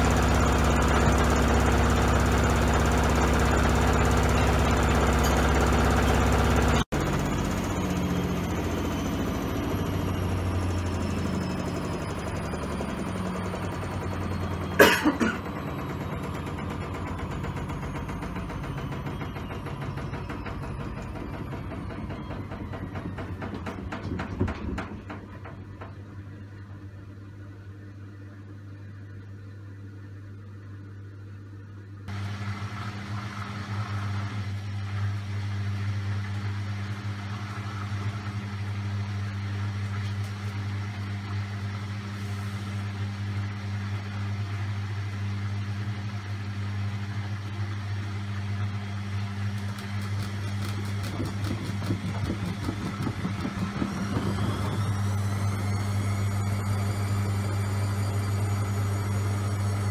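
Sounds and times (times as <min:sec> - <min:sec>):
washing machine spinning: 0:00.0 - 0:59.9
drum knocking and clattering: 0:16.8 - 0:26.0, 0:50.5 - 0:55.1.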